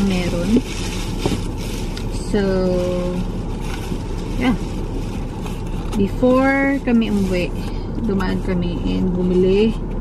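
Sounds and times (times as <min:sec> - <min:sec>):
car cabin low rumble: 0:00.0 - 0:10.0.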